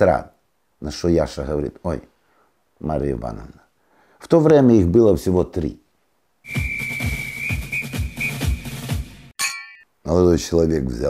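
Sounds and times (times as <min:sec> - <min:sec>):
high whistle note: 0:06.4 - 0:09.0
thumping beat: 0:06.5 - 0:09.2
bell-like ding: 0:09.4 - 0:09.9.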